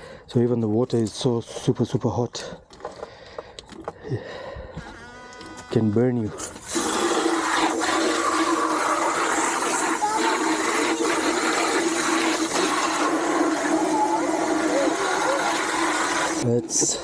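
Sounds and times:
hose water spraying into bucket: 0:04.9 - 0:17.0.

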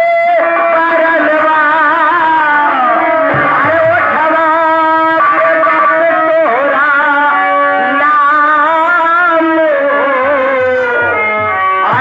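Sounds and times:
wavering melody with vibrato: 0:00.4 - 0:12.0
steady held chords: 0:01.0 - 0:12.0.

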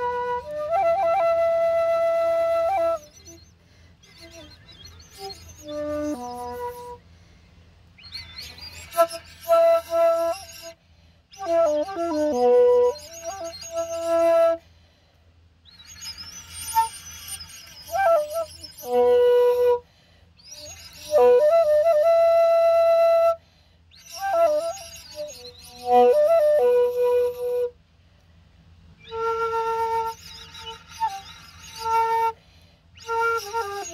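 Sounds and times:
bamboo flute: 0:00.0 - 0:15.0, 0:15.6 - 0:27.8, 0:28.9 - 0:33.9
faint birds chirping: 0:02.6 - 0:21.2, 0:28.9 - 0:33.9.

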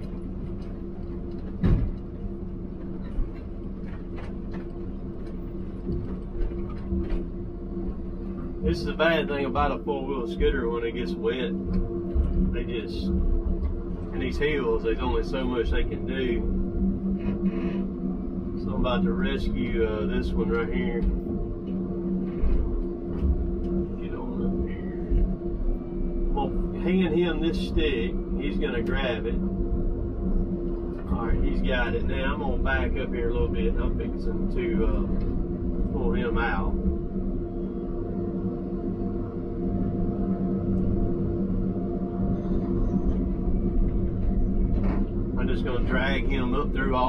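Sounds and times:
diesel engine drone inside cab: 0:00.0 - 0:47.0.

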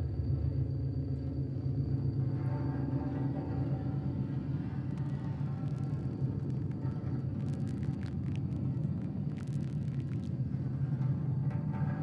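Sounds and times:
steady low rumble: 0:04.0 - 0:12.0
small clicks and crackles: 0:04.6 - 0:12.0.

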